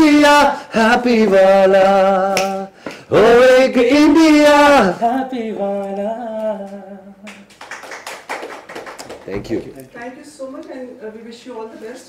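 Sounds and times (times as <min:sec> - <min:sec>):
man singing: 0:00.0 - 0:07.4
people clapping: 0:02.3 - 0:03.1, 0:07.2 - 0:09.9.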